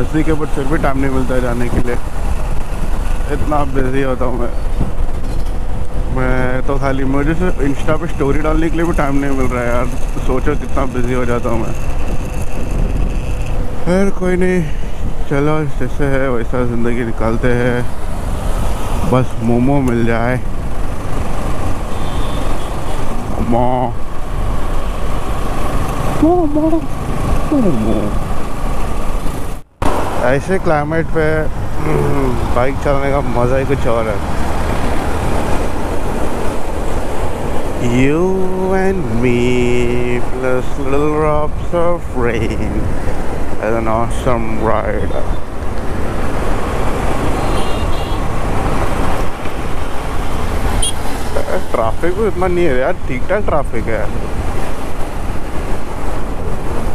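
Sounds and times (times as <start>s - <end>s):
wind rumble on microphone: 0.0s - 16.3s
motorcycle engine and road noise: 0.0s - 56.9s
passing traffic: 0.0s - 56.9s
wind rushing over microphone: 0.0s - 56.9s
man chanting: 27.5s - 28.2s, 31.8s - 33.3s.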